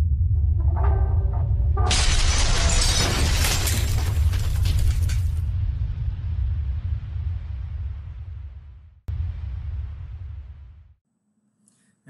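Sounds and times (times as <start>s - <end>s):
deep rumbling drone: 0.0s - 3.0s, 5.1s - 11.0s
floor crashing and shattering: 1.9s - 5.5s.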